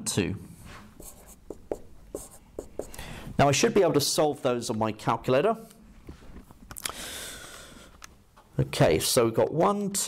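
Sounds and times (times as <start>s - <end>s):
marker pen writing on whiteboard: 0.9s - 3.0s.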